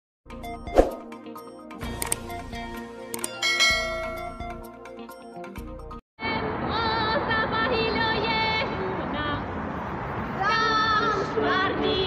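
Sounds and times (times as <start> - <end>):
click: 2.0 - 2.2
bell-like chime intro music: 3.2 - 5.4
bright ringing chime: 3.3 - 4.5.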